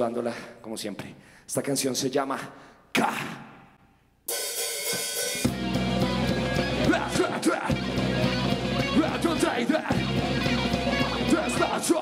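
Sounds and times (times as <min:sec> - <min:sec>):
drum kit with cymbal wash: 0:04.3 - 0:12.0
heavy metal band playing: 0:04.3 - 0:12.0.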